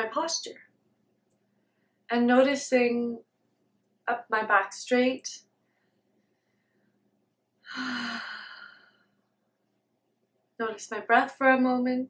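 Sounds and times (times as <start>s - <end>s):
woman sighing: 7.7s - 8.9s.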